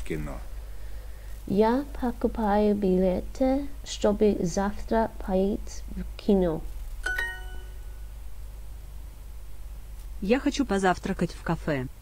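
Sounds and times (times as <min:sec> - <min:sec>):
steady low hum: 0:00.0 - 0:12.0
two-note ding chime: 0:07.0 - 0:08.0.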